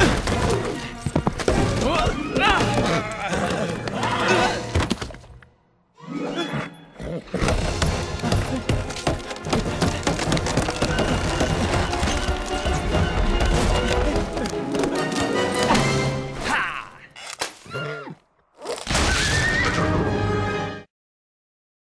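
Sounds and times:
dramatic orchestral music: 0:05.9 - 0:16.6, 0:19.4 - 0:20.9
horse whinnying: 0:17.6 - 0:18.3.

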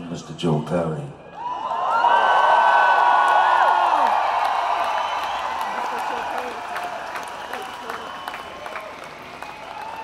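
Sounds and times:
crowd cheering and whooping: 0:01.3 - 0:10.0.

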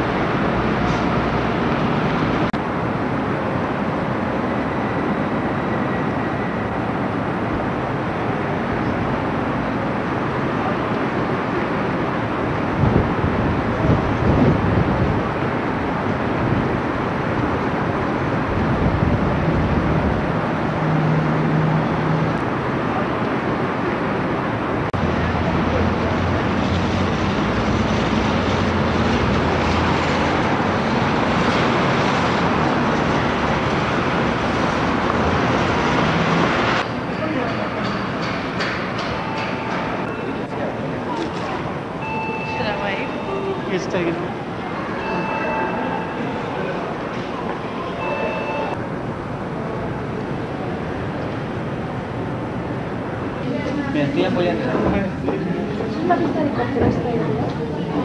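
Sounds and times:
distant traffic: 0:00.0 - 0:58.0.

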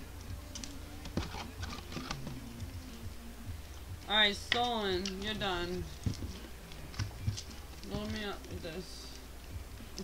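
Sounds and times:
low steady hum: 0:00.0 - 0:10.0
trading cards clicking and tapping: 0:00.5 - 0:02.8, 0:04.4 - 0:08.3.

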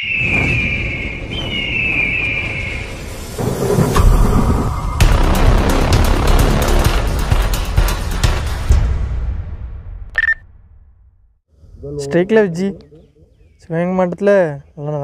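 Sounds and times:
deep boom: 0:00.4 - 0:11.4
fast music with driving beat: 0:04.7 - 0:08.9.

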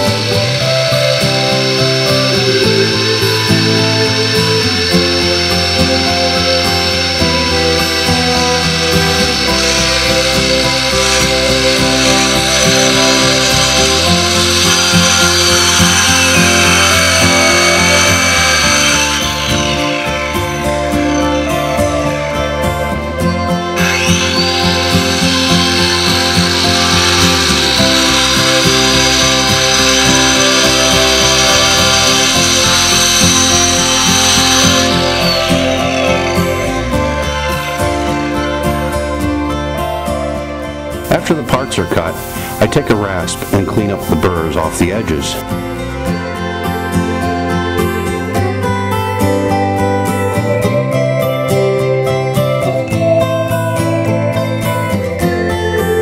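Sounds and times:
background music: 0:00.0 - 0:56.0
electric saw cutting wood: 0:00.0 - 0:56.0.

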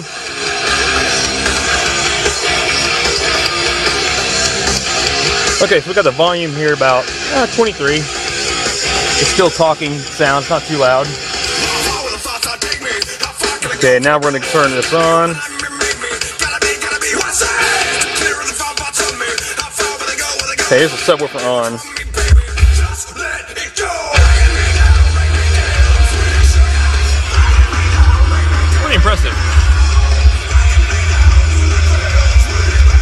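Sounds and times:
hard rock through car speakers: 0:00.0 - 0:33.0
yelled vocals: 0:11.6 - 0:21.0, 0:21.7 - 0:33.0
heavy deep bass: 0:22.0 - 0:23.0, 0:24.2 - 0:33.0.

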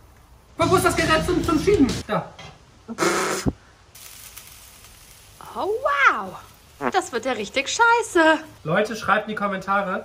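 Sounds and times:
crepe batter hissing on griddle: 0:03.1 - 0:06.7.

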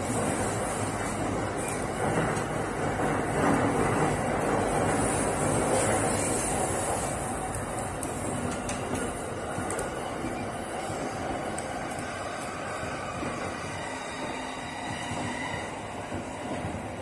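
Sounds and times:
train wheels rumbling on rails: 0:00.0 - 0:17.0.

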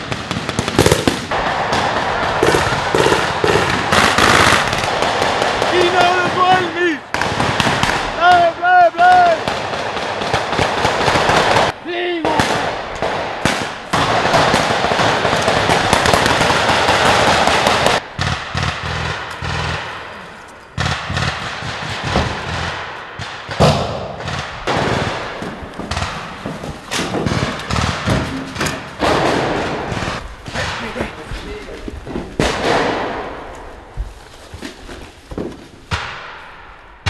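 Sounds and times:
rifle gunfire: 0:00.0 - 0:08.4, 0:09.1 - 0:20.2, 0:20.8 - 0:31.0, 0:32.4 - 0:33.5.

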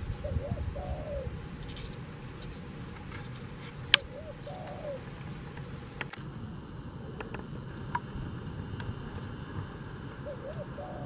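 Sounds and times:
dove cooing: 0:00.0 - 0:06.2, 0:06.8 - 0:11.0.

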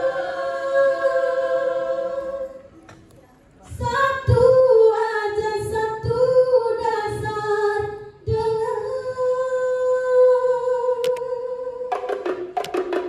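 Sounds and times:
women singing in unison: 0:00.0 - 0:02.8, 0:03.7 - 0:12.4.

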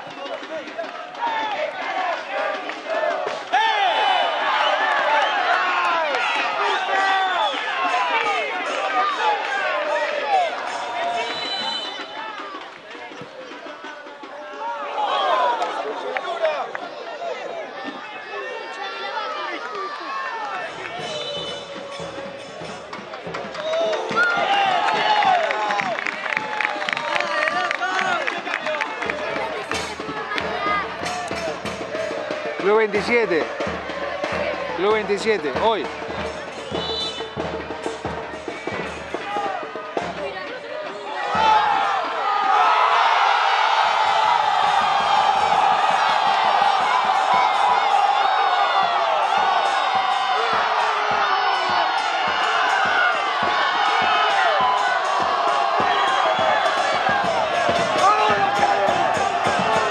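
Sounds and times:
crowd calling and shouting: 0:00.0 - 0:59.9.

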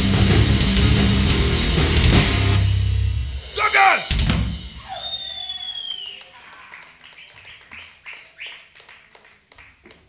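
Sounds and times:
doom metal song: 0:00.0 - 0:04.7
high whistling tone: 0:04.8 - 0:06.3
crowd clapping and calling out: 0:05.2 - 0:10.0.

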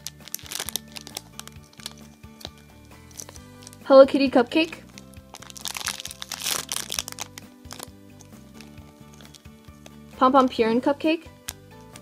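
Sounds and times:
plastic bag crinkling: 0:00.0 - 0:03.9, 0:04.6 - 0:10.0
soft background music: 0:00.0 - 0:12.0.

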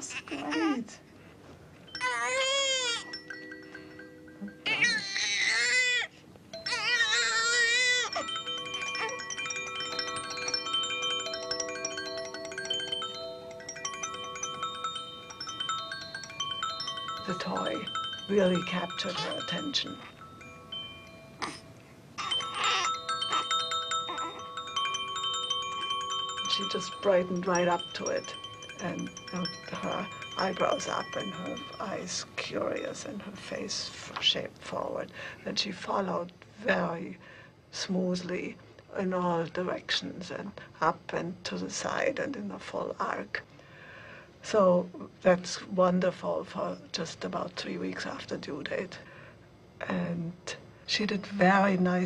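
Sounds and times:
baby toy chiming: 0:01.8 - 0:33.3
toy rattling: 0:01.9 - 0:33.6
baby crying: 0:02.0 - 0:03.1, 0:04.6 - 0:06.1, 0:06.7 - 0:08.3, 0:22.2 - 0:24.4
faint steady tones: 0:07.5 - 0:35.6.

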